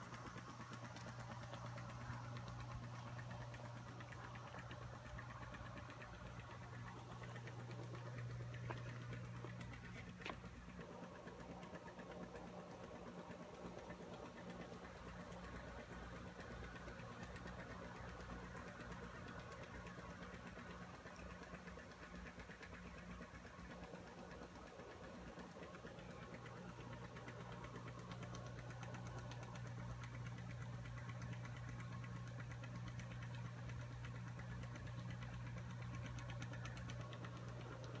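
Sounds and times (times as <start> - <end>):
pool pump motor humming: 0.0 - 38.0.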